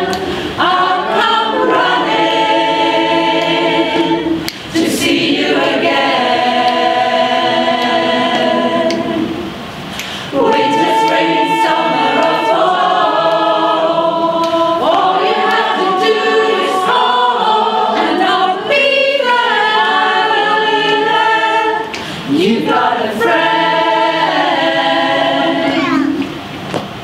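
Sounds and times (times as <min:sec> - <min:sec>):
women's choir singing a cappella: 0:00.0 - 0:26.5.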